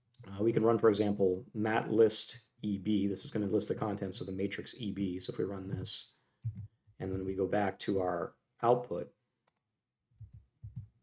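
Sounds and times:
soft low thumps: 5.6 - 7.4, 10.2 - 11.0.

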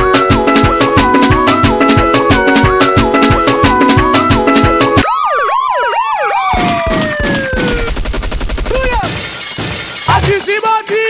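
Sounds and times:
drum beat: 0.0 - 5.0, 6.8 - 11.0
siren-style sound effect: 5.0 - 8.0.

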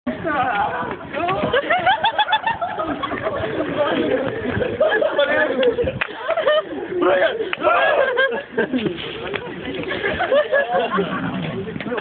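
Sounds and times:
young men whooping and shouting: 4.9 - 8.5.

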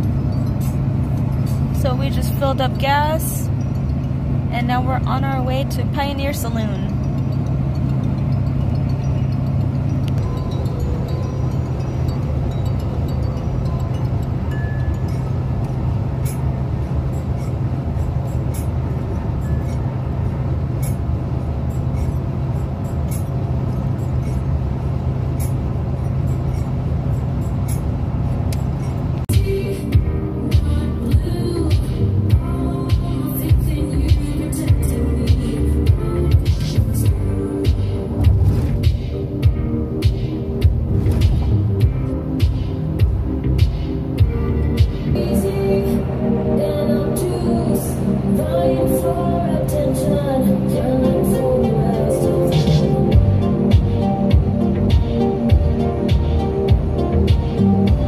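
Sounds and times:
background music: 0.0 - 58.0
car driving at highway speed: 0.0 - 58.0.

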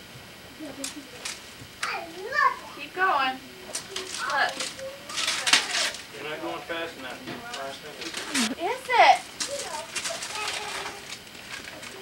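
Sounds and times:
wrapping paper crinkling and tearing: 3.7 - 6.1, 9.2 - 12.0
voice talking or babbling: 8.2 - 8.6.

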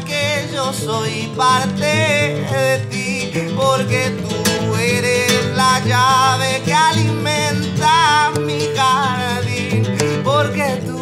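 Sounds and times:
man singing: 0.0 - 11.0
nylon-string guitar playing: 0.0 - 11.0.

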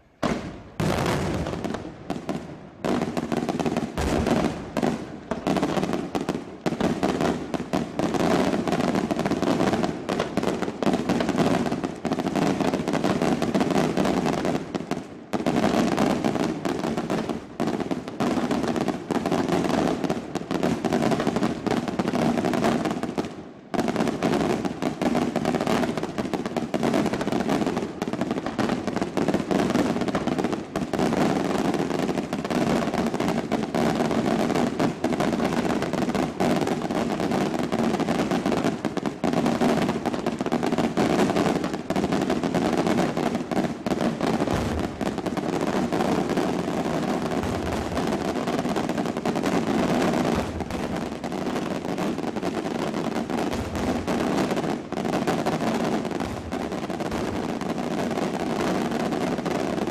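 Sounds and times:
fireworks bangs: 0.0 - 59.9.

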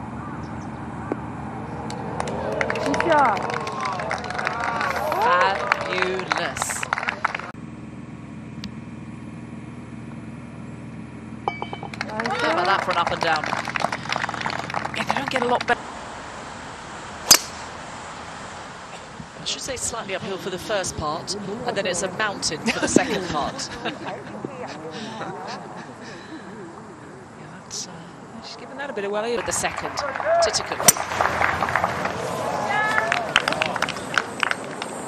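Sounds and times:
low outdoor hiss: 12.0 - 35.0
golf driver striking ball: 17.2 - 17.7.

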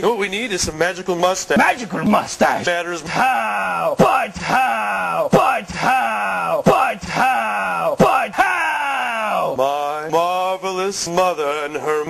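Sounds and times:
person yelling falling cries: 3.2 - 9.5.

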